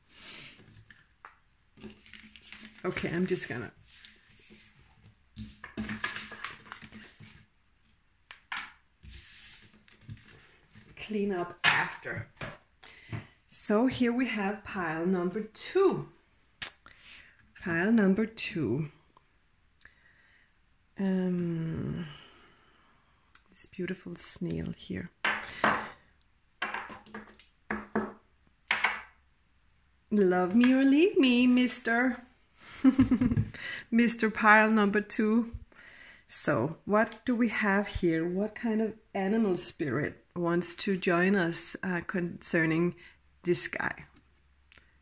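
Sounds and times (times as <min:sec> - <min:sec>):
cards rustling and tapping: 0:00.6 - 0:10.9, 0:26.6 - 0:29.0
objects knocking on a tabletop: 0:25.2 - 0:26.0, 0:26.6 - 0:29.2.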